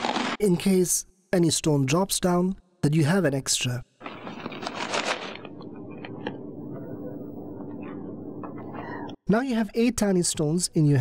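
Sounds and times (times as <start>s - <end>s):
pebbles scraping in a palm: 0.0s - 0.4s, 4.0s - 6.3s.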